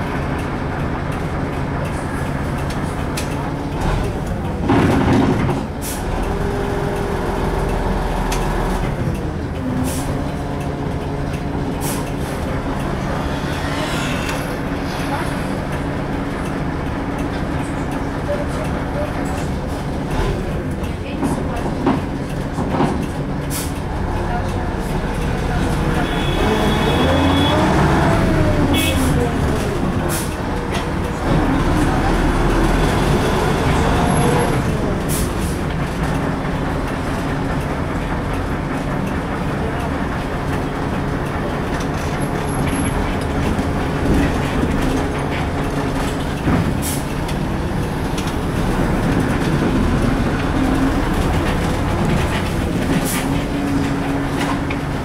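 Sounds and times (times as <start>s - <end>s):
bus running rumble: 0.0s - 55.0s
road noise: 0.0s - 55.0s
rattles and knocks: 4.0s - 5.8s.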